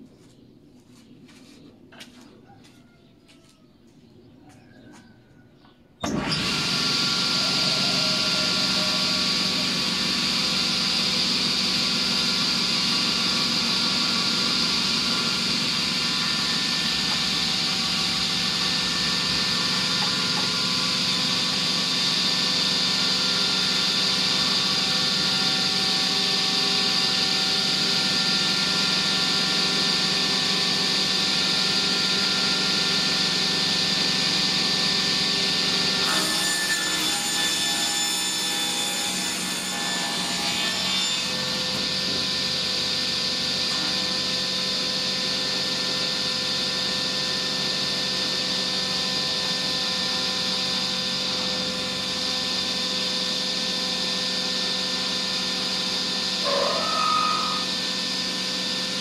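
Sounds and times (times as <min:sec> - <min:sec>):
circular saw running: 0:06.0 - 0:59.0.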